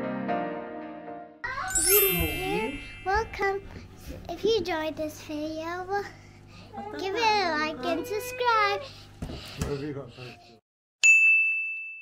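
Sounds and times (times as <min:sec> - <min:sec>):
high chime ding: 0:01.5 - 0:03.6, 0:11.0 - 0:12.0.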